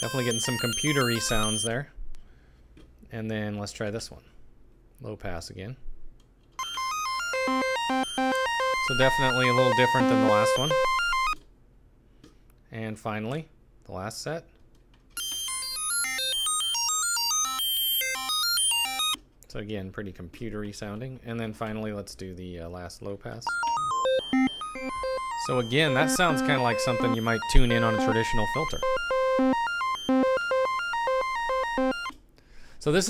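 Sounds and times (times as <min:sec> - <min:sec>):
synthesizer beeping sequence: 0:00.0 - 0:01.7, 0:06.6 - 0:11.4, 0:23.5 - 0:32.1.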